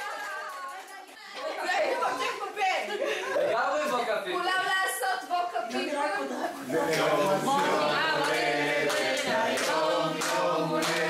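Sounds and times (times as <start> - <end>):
indistinct chatter of voices: 5.6 - 11.0.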